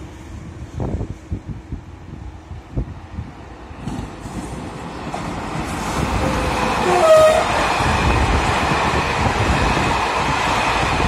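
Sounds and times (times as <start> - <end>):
electric train running on rails: 0.0 - 11.0.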